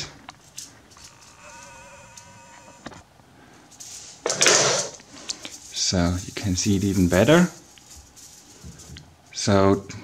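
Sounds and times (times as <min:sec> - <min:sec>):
faint buzzing hum: 0:00.0 - 0:10.0.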